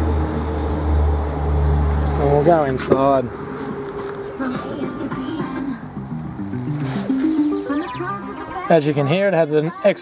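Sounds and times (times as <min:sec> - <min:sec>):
music from car stereo: 0:03.6 - 0:10.0.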